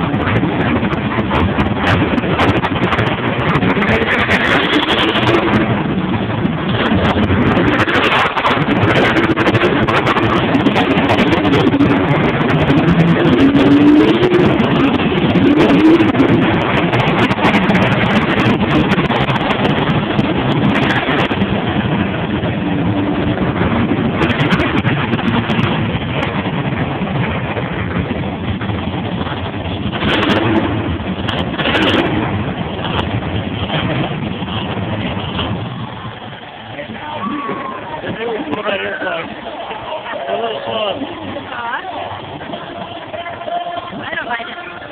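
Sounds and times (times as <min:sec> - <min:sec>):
truck engines revving: 0:00.0 - 0:44.9.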